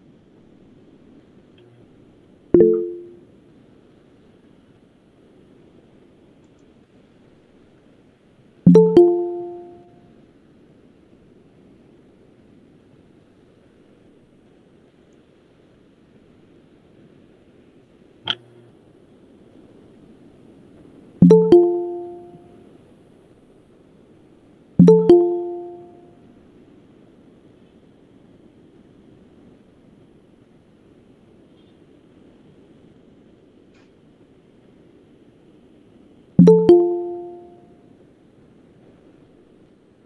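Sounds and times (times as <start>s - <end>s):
electronic two-note chime: 2.6s - 3.2s, 8.7s - 9.9s, 21.2s - 22.5s, 24.8s - 26.0s, 36.4s - 37.6s.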